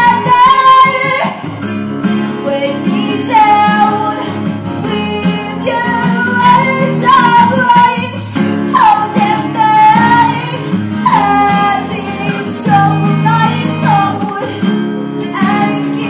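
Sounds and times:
woman singing: 0:00.0 - 0:01.6, 0:02.3 - 0:16.0
acoustic guitars strummed: 0:00.0 - 0:16.0.

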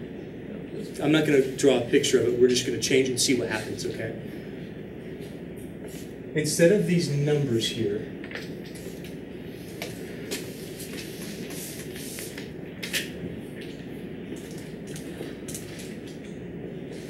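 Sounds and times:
low room hum: 0:00.0 - 0:17.0
marker writing on whiteboard: 0:08.7 - 0:12.5
whiteboard being erased: 0:09.6 - 0:12.5.

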